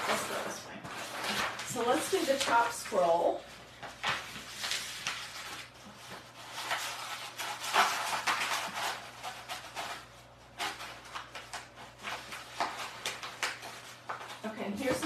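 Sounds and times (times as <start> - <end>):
paper rustling and crinkling: 0.0 - 15.0.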